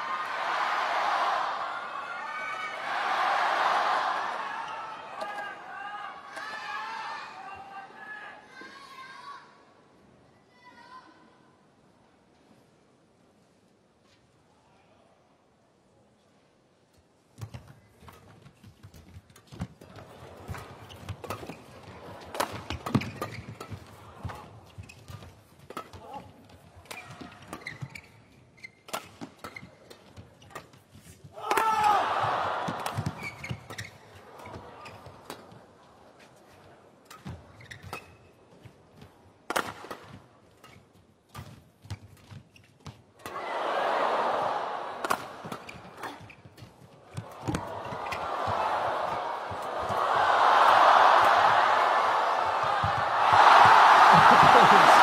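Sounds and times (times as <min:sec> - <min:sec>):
arena crowd noise: 0:00.0 - 0:12.6, 0:19.7 - 0:24.8, 0:31.3 - 0:37.6, 0:43.1 - 0:55.0.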